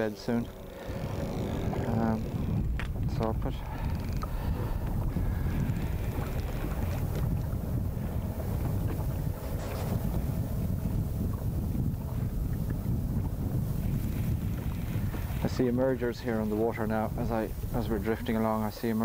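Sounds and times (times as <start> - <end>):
choppy water lapping: 0.0 - 19.0
wind buffeting microphone: 0.0 - 19.0.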